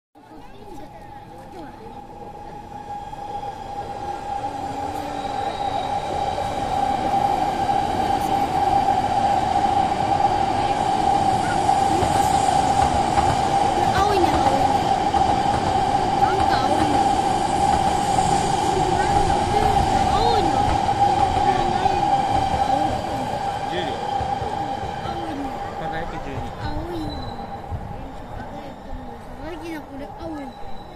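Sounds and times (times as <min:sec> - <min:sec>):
trains rumbling on tracks: 0:00.2 - 0:30.9
steady high whine: 0:01.0 - 0:30.9.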